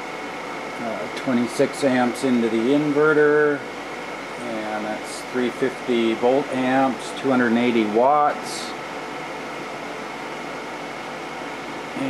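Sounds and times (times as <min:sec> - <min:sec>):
fans running: 0:00.0 - 0:12.0.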